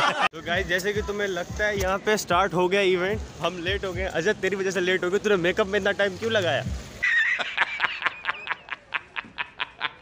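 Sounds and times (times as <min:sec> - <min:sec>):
man laughing hard: 0:00.0 - 0:00.3, 0:07.0 - 0:10.0.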